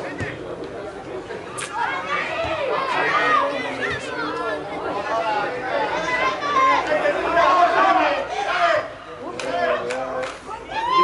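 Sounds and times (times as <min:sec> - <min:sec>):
young voices shouting: 0:01.7 - 0:09.9, 0:10.5 - 0:11.0.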